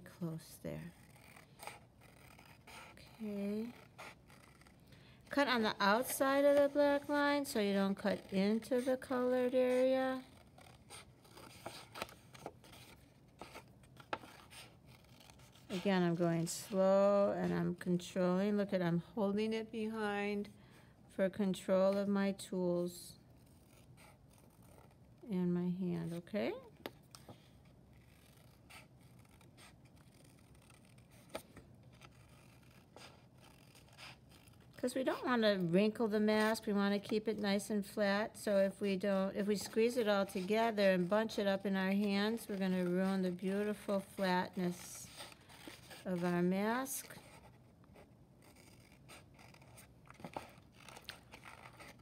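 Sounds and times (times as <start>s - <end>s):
scissors snipping paper: 0.8s - 4.8s, 5.4s - 16.8s, 28.0s - 35.3s, 39.1s - 47.5s.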